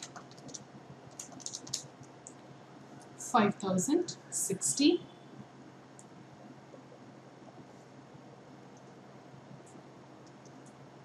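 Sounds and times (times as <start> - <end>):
keys tapping: 0.0 - 1.9.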